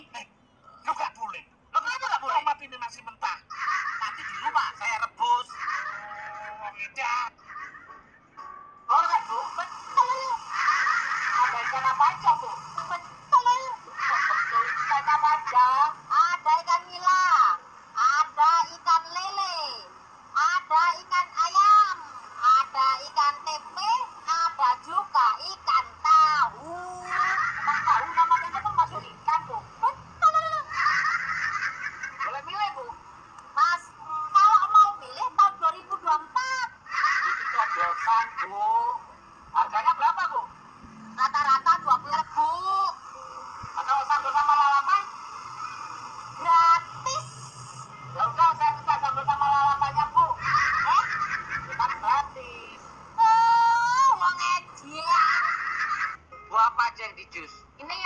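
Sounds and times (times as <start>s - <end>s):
woman talking in high-pitched voice: 11.4s - 30.8s, 33.6s - 36.8s, 46.4s - 51.1s, 51.8s - 55.4s.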